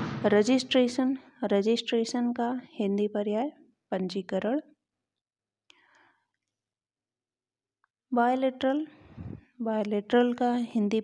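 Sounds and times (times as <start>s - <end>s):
faint breath: 5.7s - 6.4s, 8.9s - 9.5s.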